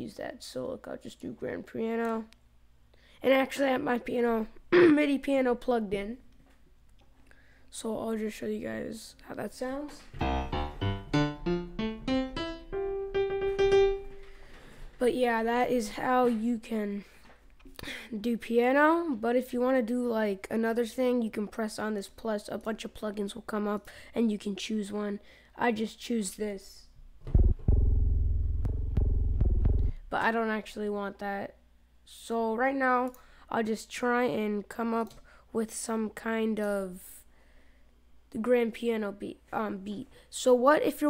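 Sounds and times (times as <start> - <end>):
piano notes climbing in pitch: 10.1 - 14.3, 27.4 - 30.0.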